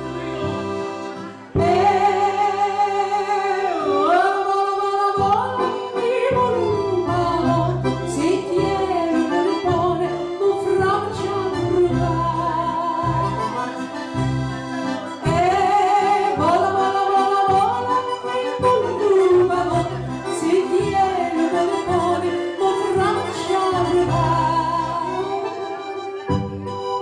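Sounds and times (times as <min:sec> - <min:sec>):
accordions playing: 0:00.0 - 0:27.0
woman singing folk song: 0:01.5 - 0:13.9, 0:15.2 - 0:26.5.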